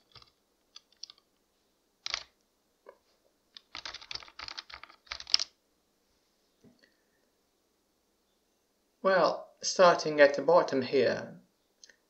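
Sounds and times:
typing on computer keyboard: 0.0s - 1.2s, 3.6s - 5.5s.

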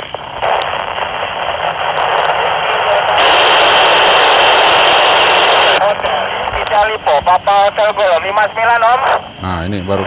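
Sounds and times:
radio speaker hiss: 0.0s - 10.0s.

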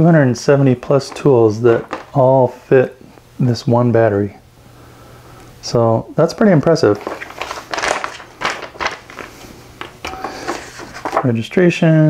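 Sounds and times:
paper rustling and crinkling: 0.8s - 2.3s, 6.6s - 11.4s.

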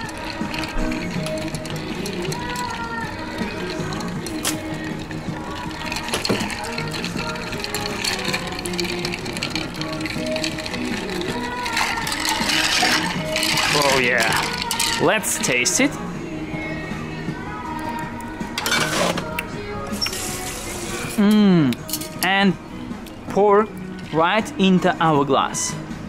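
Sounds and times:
spoon stirring ice in glass: 0.0s - 15.8s, 18.6s - 19.2s
background music: 0.0s - 26.0s.

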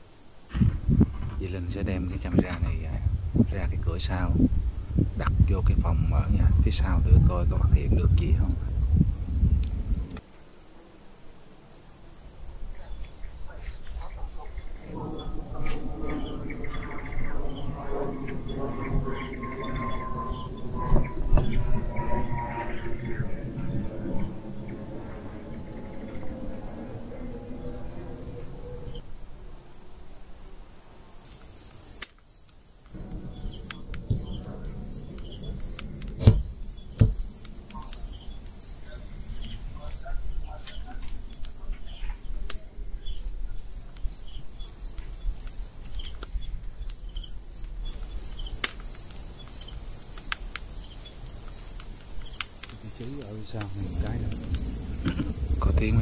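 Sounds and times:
crickets chirping: 0.0s - 56.0s
low droning hum: 0.6s - 10.2s, 14.4s - 29.1s, 32.9s - 39.6s, 52.8s - 56.0s
sharp knocks: 36.2s - 37.2s
scattered clicks: 37.2s - 38.6s, 40.6s - 42.6s, 44.9s - 56.0s.

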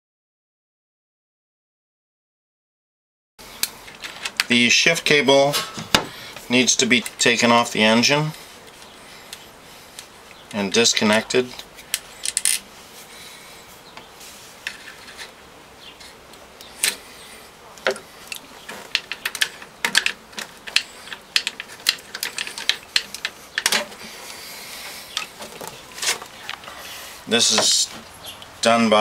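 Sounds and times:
hand tools clicking and tapping: 17.8s - 26.8s, 27.5s - 28.6s.

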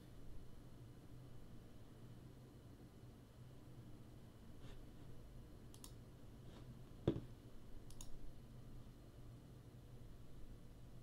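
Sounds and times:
computer mouse clicks: 5.7s - 6.0s, 7.8s - 8.2s.

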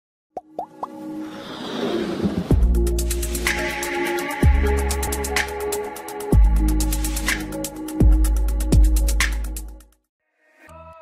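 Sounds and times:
rising pitched plops: 0.4s - 1.0s.

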